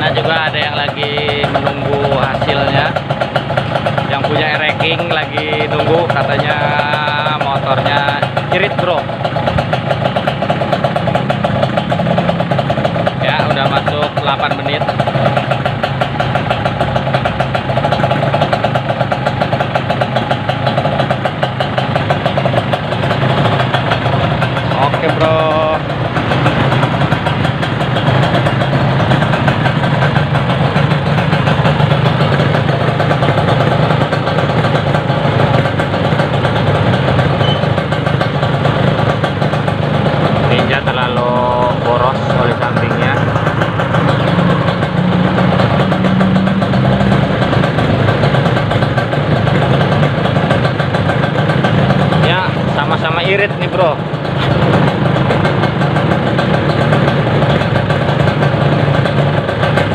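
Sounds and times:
motorcycle engines idling: 0.0s - 59.9s.

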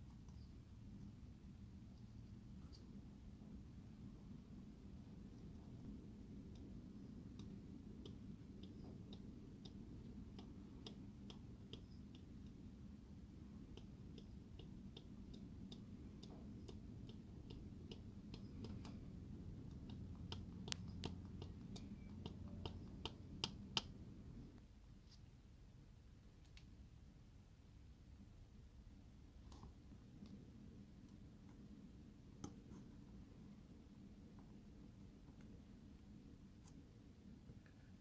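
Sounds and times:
low steady hum: 0.0s - 38.0s
wooden stick clicking on mesh: 6.5s - 12.6s, 13.6s - 24.0s.

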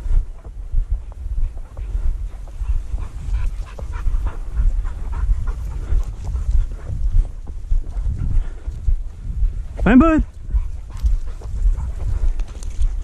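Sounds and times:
dog panting hard: 0.0s - 13.0s
low rumble on microphone: 0.0s - 13.0s.

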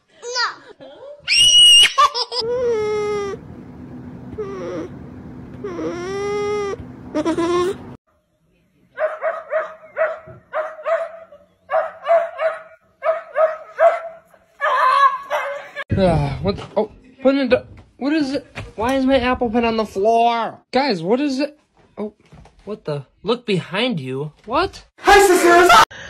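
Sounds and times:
small dog whining: 2.4s - 3.4s, 4.3s - 5.0s, 5.6s - 8.0s.

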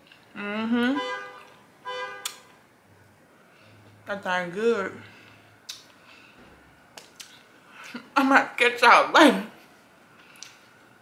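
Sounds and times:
woman humming mm while chewing: 0.3s - 1.0s.

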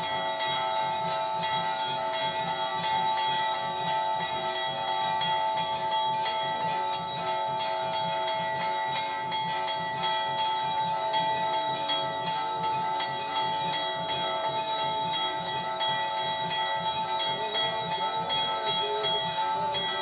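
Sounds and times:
rapid low beat: 0.0s - 20.0s
temple bells ringing rapidly: 0.0s - 20.0s.

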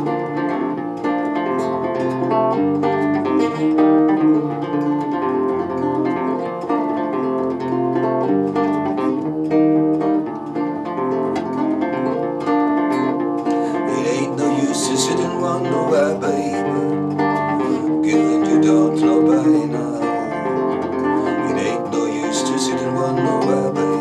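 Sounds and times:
solo nylon-string guitar: 0.0s - 24.0s.

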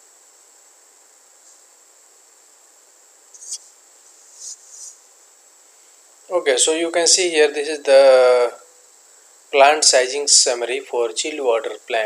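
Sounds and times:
faint high-pitched whine: 0.0s - 12.0s
microphone hiss: 0.0s - 12.0s.

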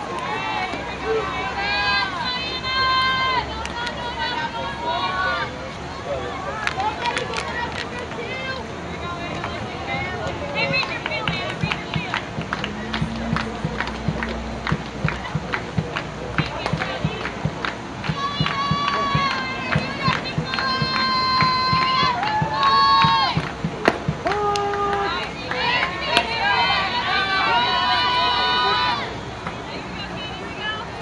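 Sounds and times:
rhythmic clapping: 10.5s - 26.4s
girls chanting high notes: 18.1s - 23.4s.

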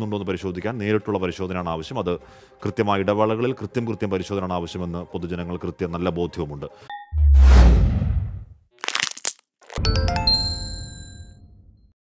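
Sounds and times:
swoosh: 7.2s - 8.5s.

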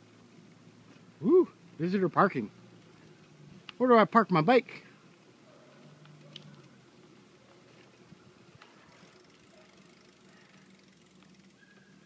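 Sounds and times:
bicycle rolling on pavement: 0.0s - 12.0s
faint clicks: 5.9s - 6.8s.

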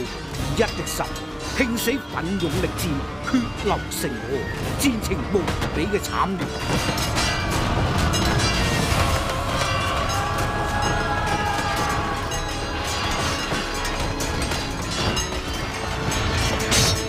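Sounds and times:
dramatic background music: 0.0s - 17.0s
weapons clashing: 0.0s - 17.0s
battle clamour rumble: 4.5s - 17.0s.

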